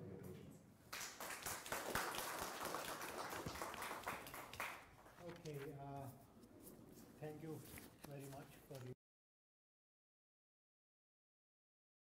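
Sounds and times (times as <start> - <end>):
audience applauding: 0.9 - 5.2.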